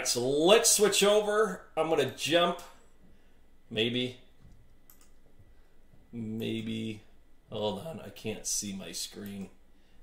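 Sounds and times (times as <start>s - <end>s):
faint computer clicks: 4.4s - 5.3s.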